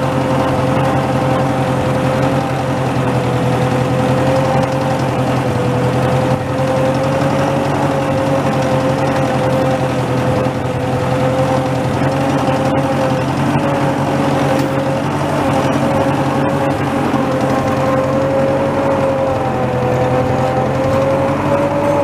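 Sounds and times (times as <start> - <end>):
steady whine: 0.0 - 22.0
tractor engine running: 0.0 - 22.0.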